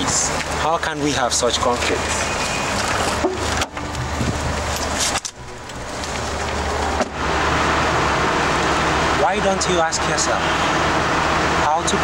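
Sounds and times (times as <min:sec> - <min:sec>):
car engine humming: 0:00.0 - 0:12.0.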